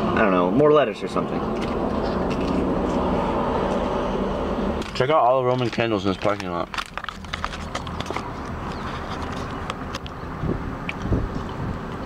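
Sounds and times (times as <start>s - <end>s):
car engine hum inside cabin: 0.0s - 6.2s.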